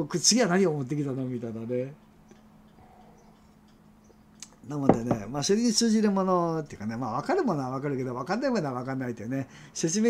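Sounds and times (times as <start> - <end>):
faint small ticks: 2.0 - 4.6.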